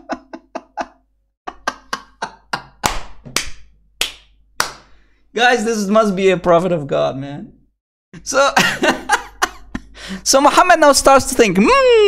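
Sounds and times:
man laughing: 0.0s - 2.8s, 8.2s - 10.2s
sharp hand claps: 2.6s - 4.9s.

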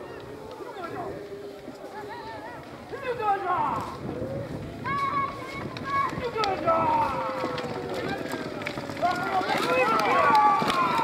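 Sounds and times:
spectators shouting and cheering: 0.0s - 11.0s.

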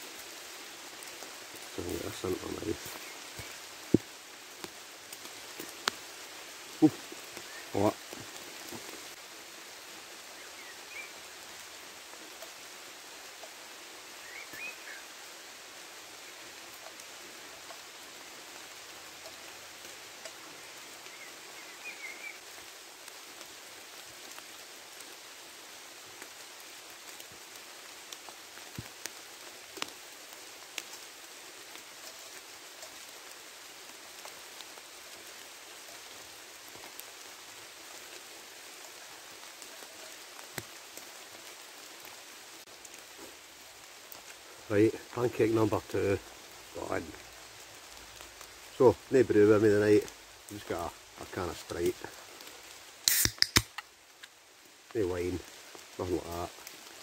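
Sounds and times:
rain falling through woodland: 0.0s - 57.0s
raindrop ticks: 0.2s - 9.2s, 13.3s - 13.7s, 16.2s - 23.3s, 25.9s - 56.9s
drinks can fizzing hiss: 53.0s - 54.3s
can ring-pull clicks: 53.1s - 53.8s.

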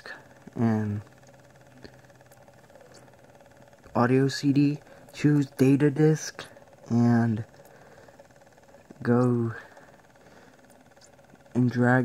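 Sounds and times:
faint low hum: 0.0s - 12.0s
light buzz: 0.0s - 12.0s.

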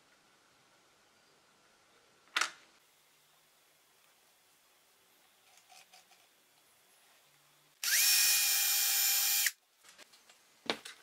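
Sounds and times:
electric drill whining: 7.8s - 9.6s.

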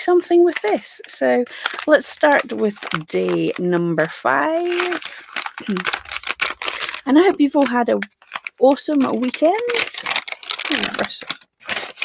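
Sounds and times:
plastic packet crinkling: 0.3s - 12.0s.

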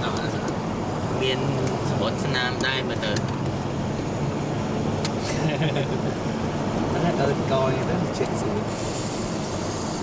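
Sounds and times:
car engine and tyre noise: 0.0s - 10.0s.

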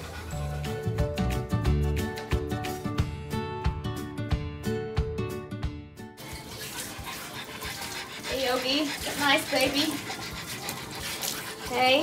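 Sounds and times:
background music with beat: 0.3s - 6.0s
shower sprayer water hissing: 6.2s - 12.0s.

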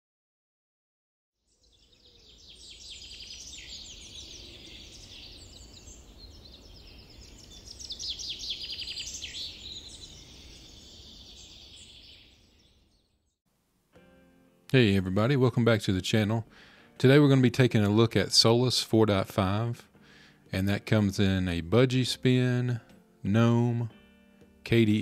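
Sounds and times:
birds chirping and calling: 1.7s - 13.3s.

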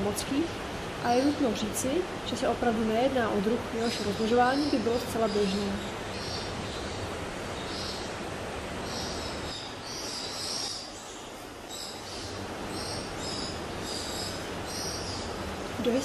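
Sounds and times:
indoor ambience hiss: 0.0s - 16.0s.

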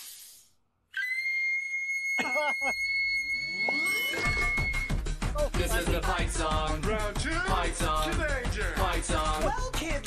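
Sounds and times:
music beat: 4.2s - 10.0s.

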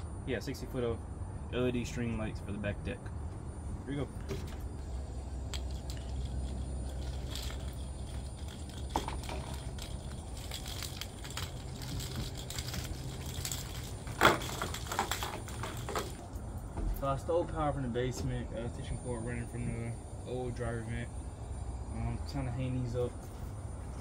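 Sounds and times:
low steady rumble: 0.0s - 24.0s
string lights clicking and rattling: 5.4s - 16.4s.

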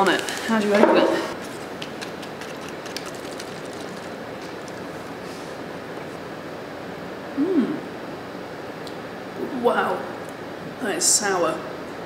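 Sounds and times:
paper sachet tearing: 0.0s - 0.8s, 1.4s - 5.2s.

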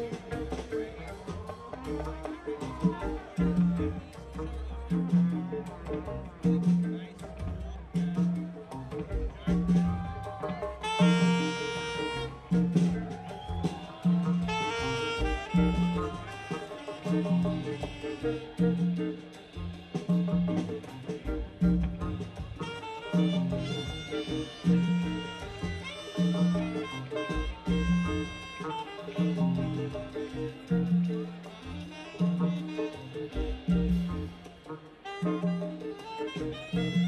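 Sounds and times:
afrobeat band playing: 0.0s - 37.0s
horn section held phrases: 0.0s - 37.0s.

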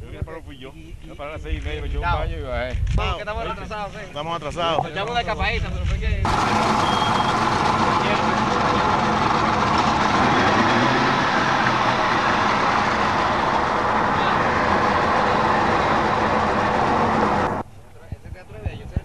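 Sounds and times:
boat engine running: 6.3s - 17.6s
indistinct talk: 7.4s - 10.0s.

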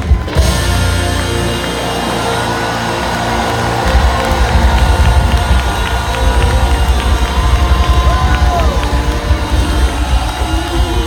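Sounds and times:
crowd cheering: 0.0s - 11.0s
heavy drum and bass beat: 0.0s - 11.0s
live band music: 0.0s - 11.0s.

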